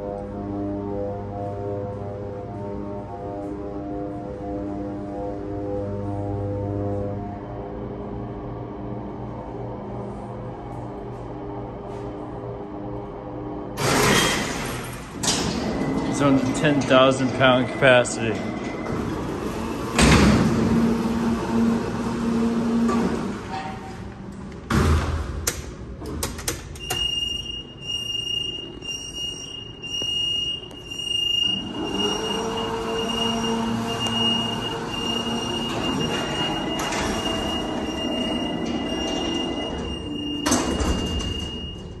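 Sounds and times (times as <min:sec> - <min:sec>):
elevator motor hum: 0:00.0 - 0:24.7, 0:25.7 - 0:42.0
elevator door thud: 0:13.8 - 0:23.5, 0:31.3 - 0:42.0
high warning tone: 0:15.6 - 0:20.0, 0:26.8 - 0:42.0.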